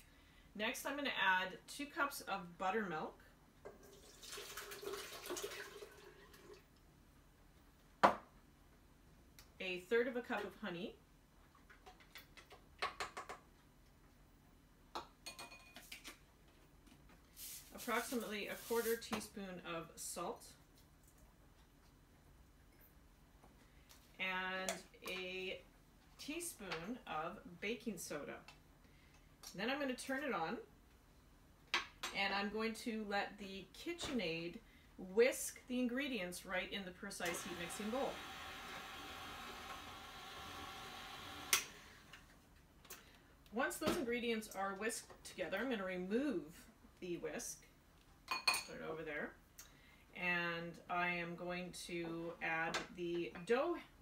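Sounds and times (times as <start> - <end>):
stand mixer motor hum: 37.4 - 41.6.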